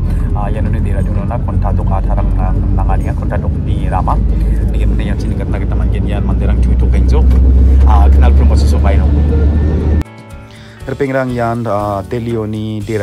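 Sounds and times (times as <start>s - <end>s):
bus engine rumble: 0.0s - 10.0s
indistinct voices: 0.0s - 10.0s
quiet background music: 0.0s - 13.0s.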